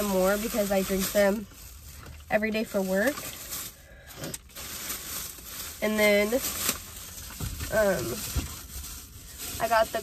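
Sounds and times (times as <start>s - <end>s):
plastic rustling and crinkling: 0.0s - 10.0s.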